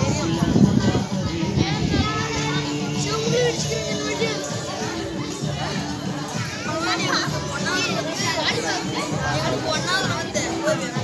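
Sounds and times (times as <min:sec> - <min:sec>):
children chattering and calling out: 0:00.0 - 0:11.0
music with held notes: 0:00.0 - 0:11.0.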